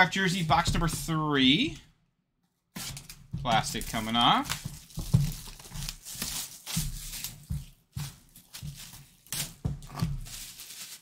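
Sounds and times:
plastic shrink-wrap tearing: 4.8 - 7.5, 8.9 - 11.0.

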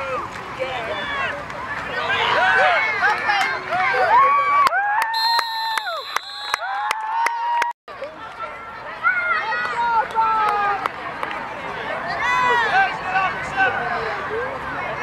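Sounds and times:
spectators shouting and cheering: 0.0 - 15.0
shrill whistle: 5.1 - 6.8.

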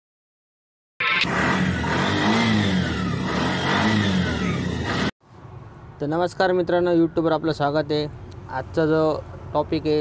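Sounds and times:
auto-rickshaw engine revving: 1.0 - 5.2.

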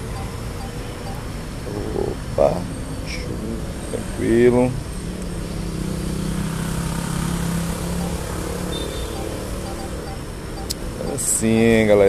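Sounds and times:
vehicle engine humming: 6.8 - 11.3.

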